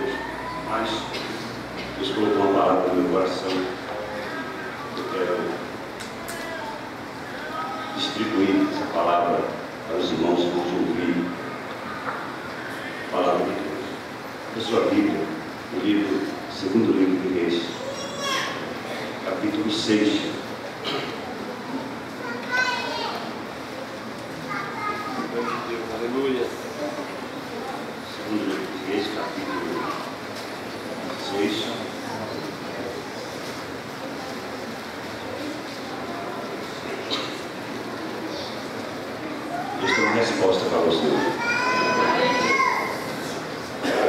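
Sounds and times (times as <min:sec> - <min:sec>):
child's high voice: 0:00.0 - 0:01.1, 0:06.2 - 0:08.0, 0:17.7 - 0:18.7, 0:22.2 - 0:23.4, 0:24.5 - 0:25.7, 0:41.2 - 0:43.1
murmur of congregation: 0:00.0 - 0:44.0.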